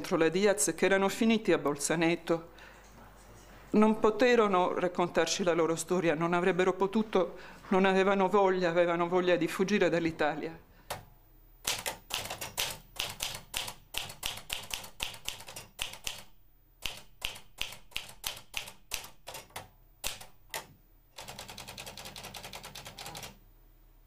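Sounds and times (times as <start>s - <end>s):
manual typewriter typing: 11.6s - 23.4s.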